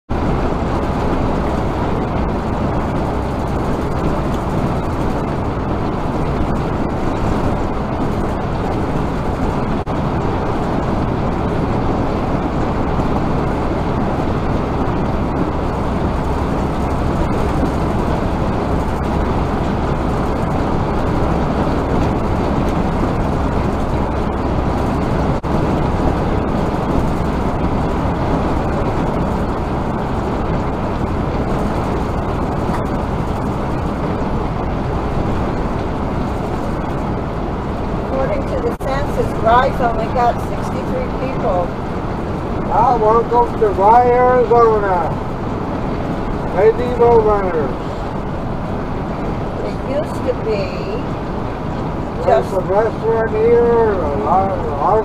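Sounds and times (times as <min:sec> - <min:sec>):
vehicle road and engine noise: 0:00.1 - 0:55.0.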